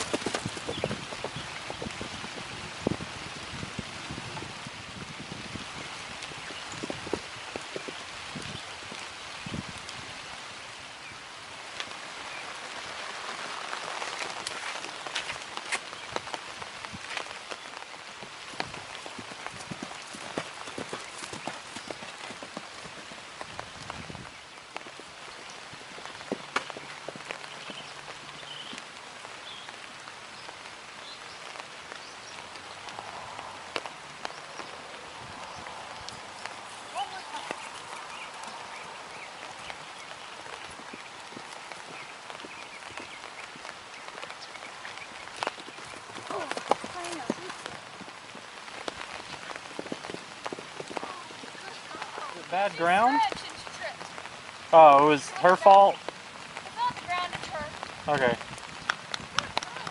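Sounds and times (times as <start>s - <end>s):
steady rain hiss: 0.0s - 59.9s
raindrops ticking: 11.2s - 59.9s.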